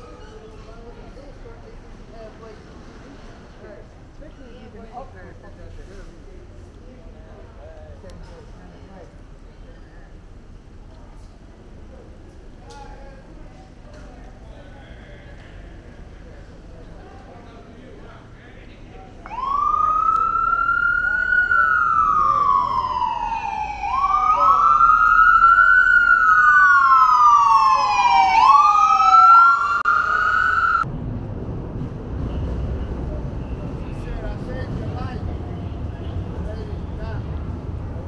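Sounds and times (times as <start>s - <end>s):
low rumble of street traffic: 0.0s - 38.0s
ambulance siren wailing: 19.2s - 30.9s.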